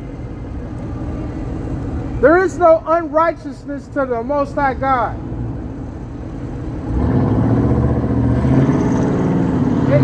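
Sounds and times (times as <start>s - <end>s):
deep vehicle engine running: 5.1s - 10.0s.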